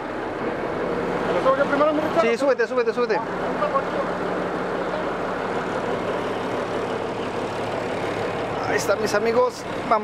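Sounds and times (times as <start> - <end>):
truck diesel engine idling: 0.0 - 10.0.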